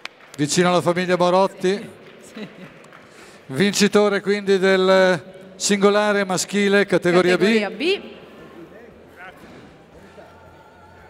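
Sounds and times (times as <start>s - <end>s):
crowd murmur in large hall: 1.8s - 3.6s, 6.8s - 11.0s.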